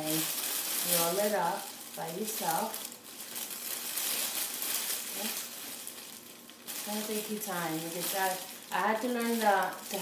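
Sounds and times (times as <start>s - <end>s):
cellophane wrap crinkling: 0.0s - 10.0s.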